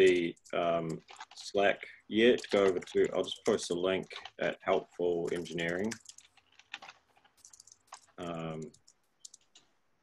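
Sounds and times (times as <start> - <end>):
faint keyboard typing clicks: 0.0 - 9.8.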